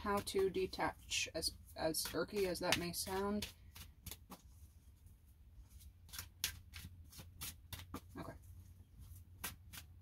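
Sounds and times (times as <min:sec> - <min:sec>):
cards being shuffled: 0:01.6 - 0:08.4, 0:09.0 - 0:10.0.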